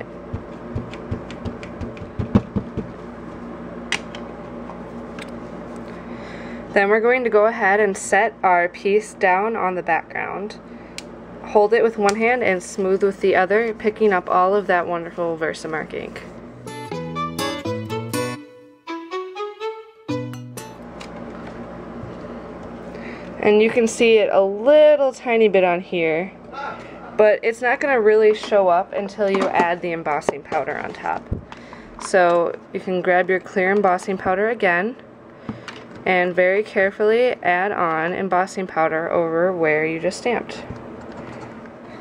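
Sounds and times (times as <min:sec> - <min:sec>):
ink pad tapping on rubber stamp: 0:00.3 - 0:03.0
music with plucked notes: 0:16.6 - 0:20.9.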